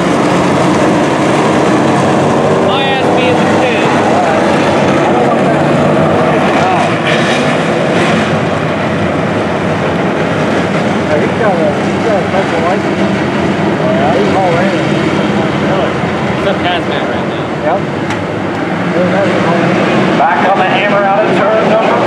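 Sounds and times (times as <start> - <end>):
car engine passing by: 0.0 - 22.0
race car engines droning: 0.0 - 22.0.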